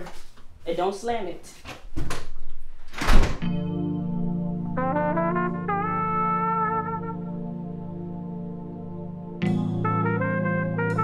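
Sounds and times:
door slamming: 1.8 - 3.5
background score music: 3.4 - 11.0.

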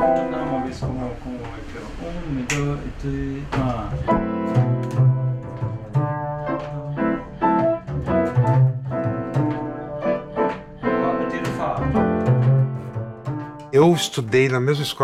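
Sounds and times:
piano playing: 0.0 - 1.7, 3.7 - 15.0
double bass plucked pizzicato: 3.2 - 11.0.

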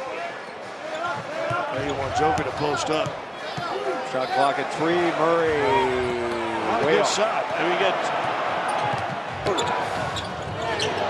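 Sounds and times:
arena crowd noise: 0.0 - 11.0.

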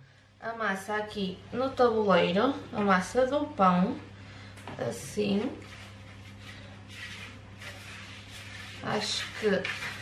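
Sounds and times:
steady low hum: 0.0 - 10.0
hands rustling bread dough: 5.3 - 10.0.

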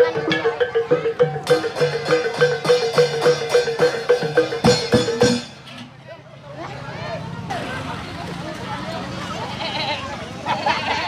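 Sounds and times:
children shouting and chattering: 0.0 - 2.9, 5.4 - 11.0.

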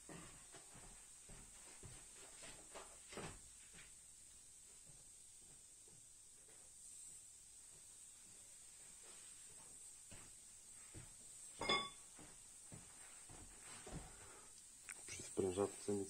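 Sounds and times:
ringing metallic clink: 11.6 - 12.0.

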